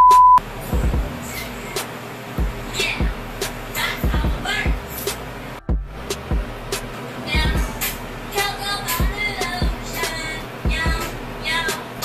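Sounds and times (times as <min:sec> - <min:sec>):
steady test-tone beep: 0:00.0 - 0:00.4
background music with low beat: 0:00.0 - 0:01.8, 0:02.4 - 0:11.8.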